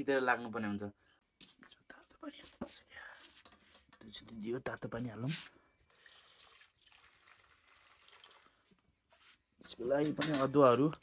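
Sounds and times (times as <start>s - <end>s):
water trickling into metal pot: 5.9s - 8.8s.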